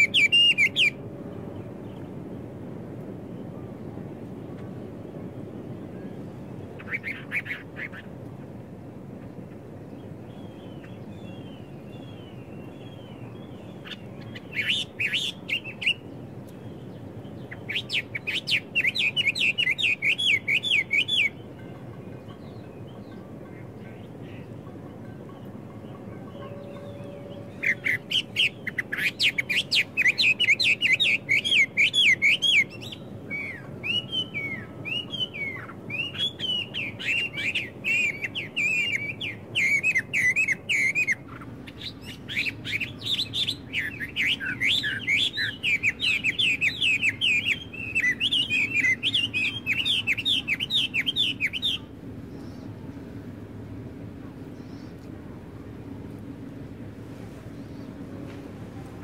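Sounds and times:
songbirds chirping: 0.0 - 59.0.

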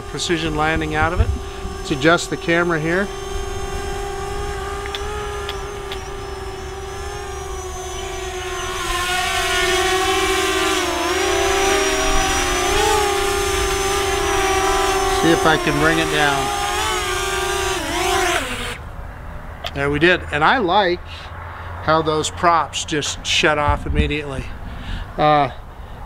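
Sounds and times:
drone motors whining: 0.0 - 18.8.

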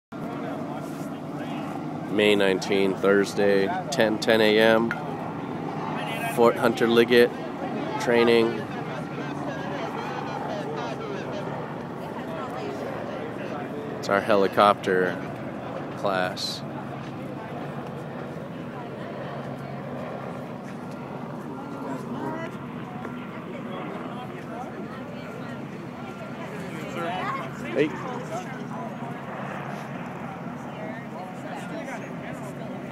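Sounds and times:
people talking: 0.2 - 5.1, 5.8 - 32.9
low engine drone: 0.2 - 32.9
voices chattering: 0.2 - 32.9.

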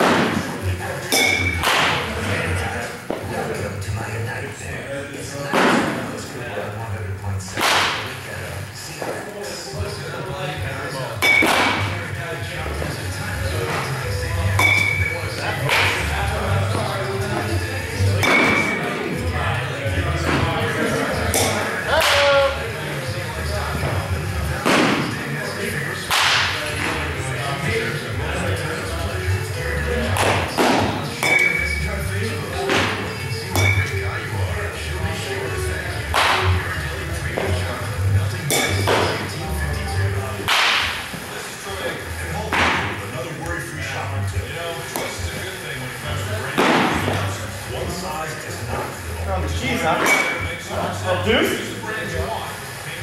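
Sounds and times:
ringing ping of bat: 1.1 - 1.6, 14.6 - 15.1, 31.2 - 31.6, 33.6 - 33.9
metal bat hitting baseballs: 1.1 - 2.2, 7.5 - 8.2, 11.2 - 12.0, 14.4 - 16.0, 18.2 - 19.0, 21.3 - 22.3, 26.1 - 27.0, 30.2 - 31.8, 32.6 - 34.0, 38.5 - 39.4, 40.4 - 41.1, 50.0 - 50.5.

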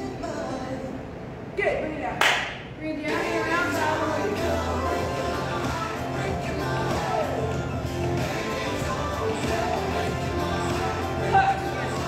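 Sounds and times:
sharp clap-like burst: 2.2 - 2.6
workout music: 3.0 - 12.0.

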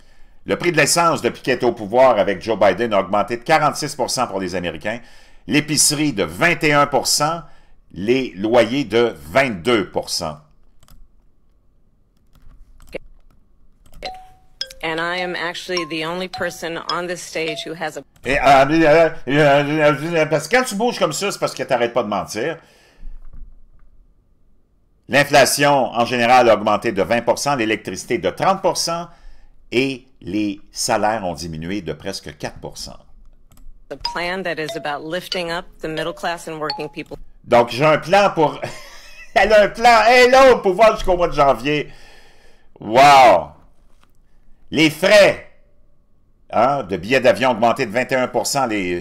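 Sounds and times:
two-tone chime: 14.0 - 14.9, 15.8 - 17.8, 34.1 - 35.1, 36.7 - 37.0
woman speaking from video: 14.8 - 18.1, 33.9 - 37.2.

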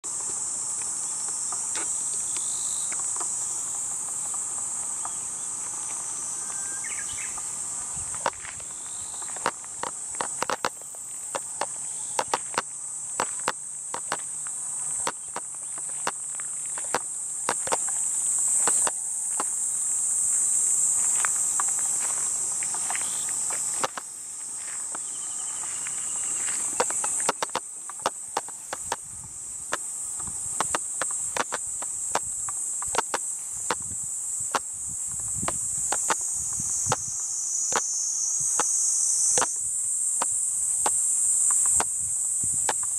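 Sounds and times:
insects chirring: 0.0 - 42.9
footsteps on grass and dirt: 5.0 - 34.0.

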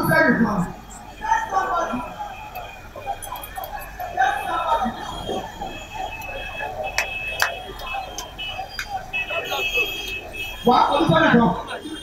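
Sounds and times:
indistinct voices over loudspeakers: 0.0 - 12.0.

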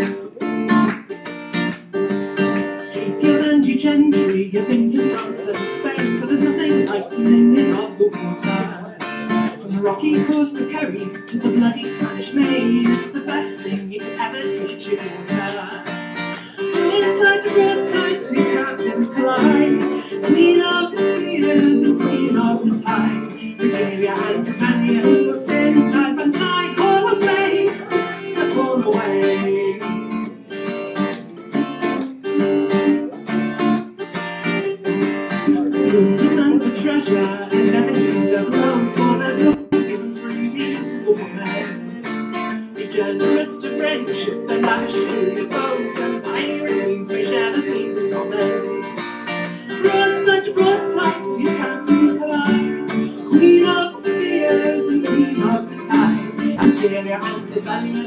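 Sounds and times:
strummed acoustic guitar: 0.0 - 58.0
fiddle: 16.2 - 39.9.

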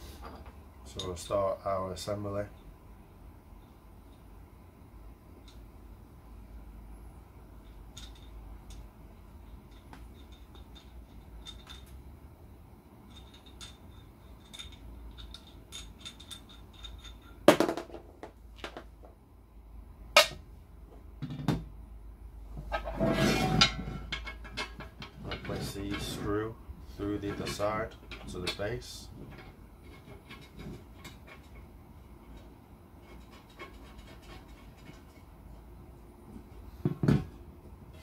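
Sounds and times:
metal parts clicking: 13.1 - 17.4.

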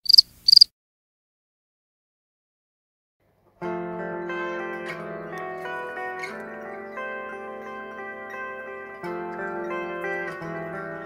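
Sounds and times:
short high-pitched chirps: 0.0 - 0.7.

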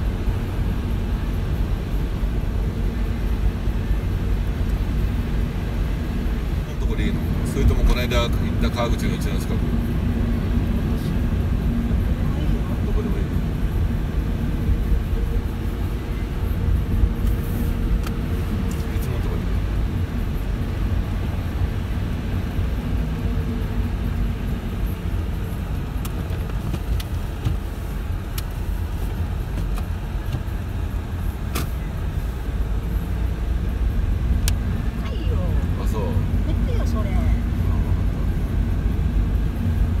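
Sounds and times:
tyres and engine rumble: 0.0 - 40.0.

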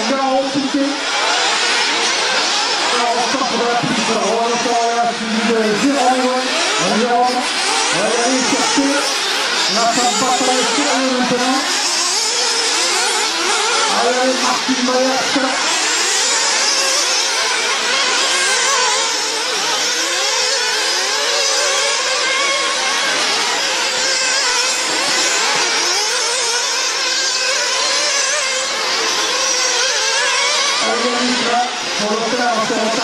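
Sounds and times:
rc car engines revving: 0.0 - 33.0.

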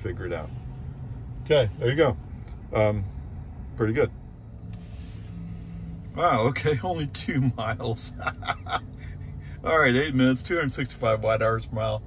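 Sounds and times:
low cabin hum: 0.0 - 12.0.

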